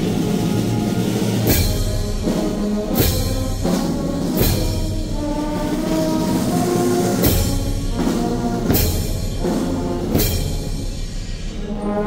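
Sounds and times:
brass band funeral march: 0:00.0 - 0:12.0
percussion strikes: 0:00.0 - 0:12.0.

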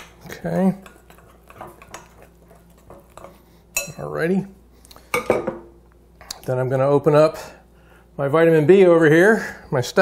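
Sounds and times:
spoon scraping mixing bowl: 0:00.0 - 0:04.4
metal clinking on ceramic: 0:00.8 - 0:04.0.

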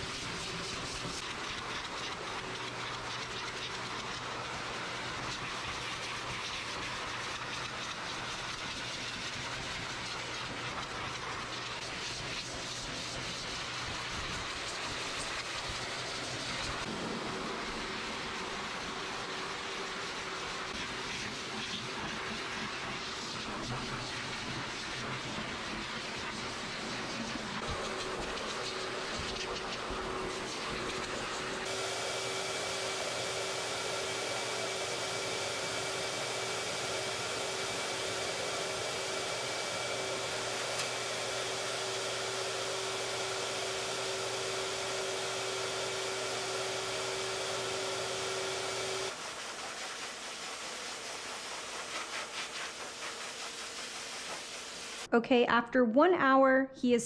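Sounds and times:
pet dryer blowing air: 0:00.0 - 0:55.1.

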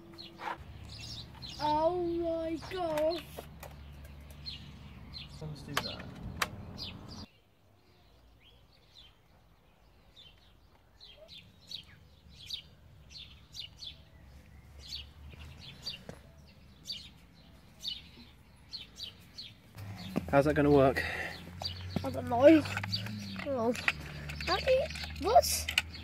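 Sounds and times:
birds chirping: 0:00.0 - 0:26.0.

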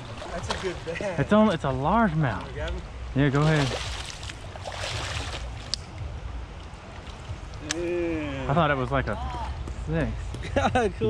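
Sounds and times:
river water rushing: 0:00.0 - 0:01.8, 0:02.8 - 0:05.8
fish thrashing and splashing: 0:03.4 - 0:05.7.

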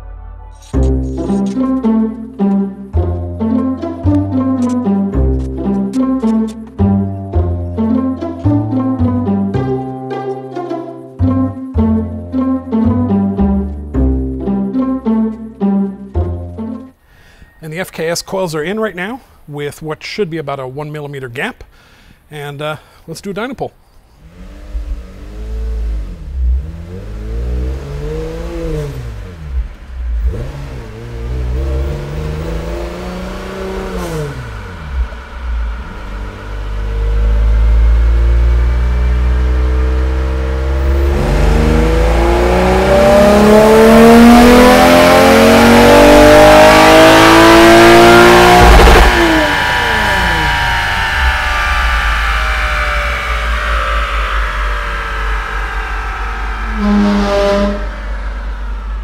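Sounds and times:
car engine revving on a dyno: 0:24.2 - 0:59.0.

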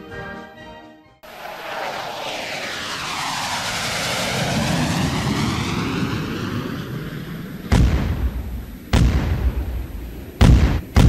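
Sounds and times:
jet aircraft roaring past: 0:01.2 - 0:10.9.

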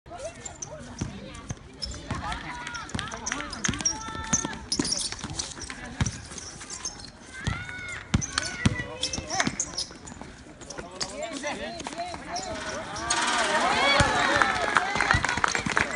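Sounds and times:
basketball bouncing on concrete: 0:00.9 - 0:06.3, 0:07.4 - 0:09.8, 0:13.9 - 0:15.9
players shouting: 0:12.4 - 0:15.9.

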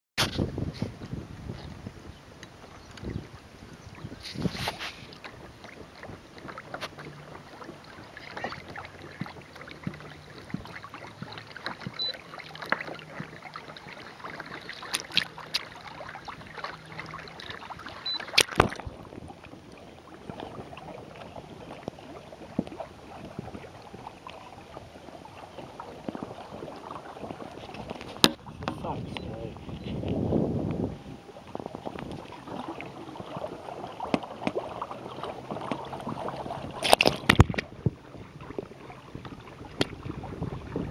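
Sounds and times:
water lapping against kayak hull: 0:00.2 - 0:40.9.

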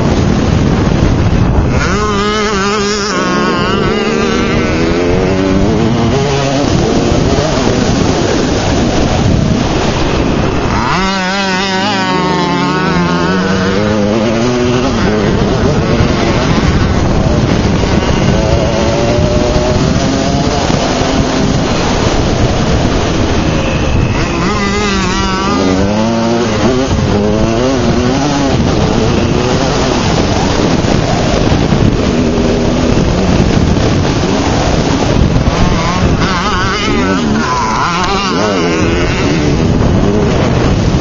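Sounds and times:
dirt bike engine revving: 0:00.0 - 0:41.0
ground rumble: 0:00.0 - 0:41.0
heavy wind: 0:00.0 - 0:41.0.

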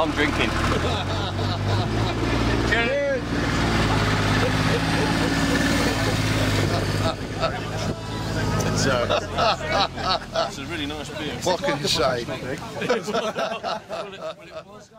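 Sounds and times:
voices: 0:00.0 - 0:14.9.

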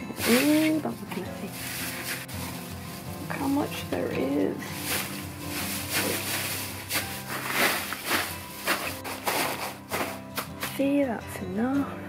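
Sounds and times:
background music: 0:00.0 - 0:12.0
paper packing fill rustling: 0:00.2 - 0:10.8.

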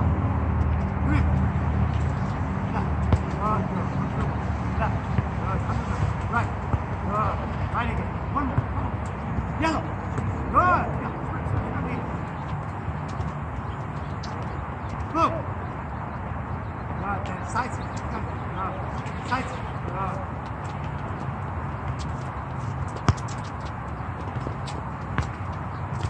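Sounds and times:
distant voice calls: 0:02.0 - 0:22.6.

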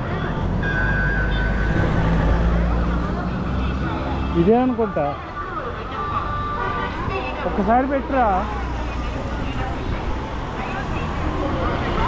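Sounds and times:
faint voices: 0:00.0 - 0:12.0
road traffic rumble: 0:00.0 - 0:12.0.

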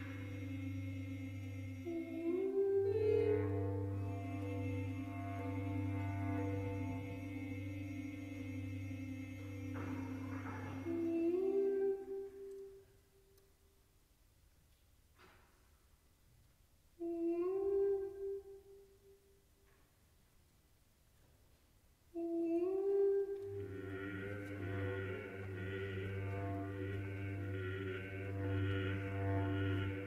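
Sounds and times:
voices singing chant-like chord: 0:00.0 - 0:11.1, 0:23.6 - 0:30.0
bass clarinet: 0:00.0 - 0:12.5, 0:22.2 - 0:30.0
low drone: 0:23.6 - 0:30.0.

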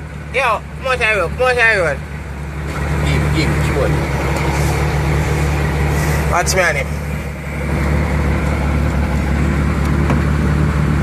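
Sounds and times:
diesel truck engine droning: 0:00.0 - 0:11.0.

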